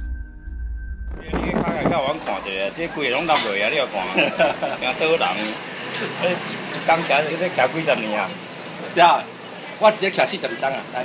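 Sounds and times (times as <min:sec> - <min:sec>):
person talking or singing: 0:01.2 - 0:03.1
dishes and utensils clinking: 0:02.2 - 0:07.2.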